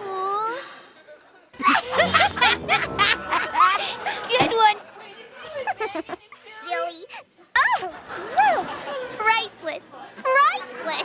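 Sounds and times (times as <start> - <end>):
faint music: 1.6 - 4.4.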